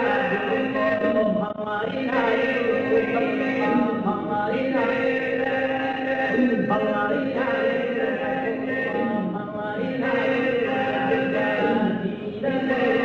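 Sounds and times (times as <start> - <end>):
male vocal quartet singing: 0.0 - 13.0.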